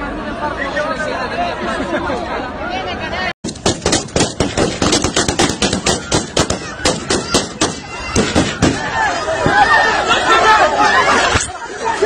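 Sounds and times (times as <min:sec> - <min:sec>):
rapid rifle fire: 0:03.5 - 0:08.8.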